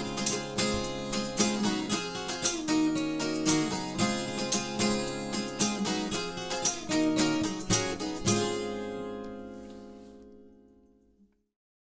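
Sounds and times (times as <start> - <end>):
acoustic guitar strumming chords: 0.0 - 10.8.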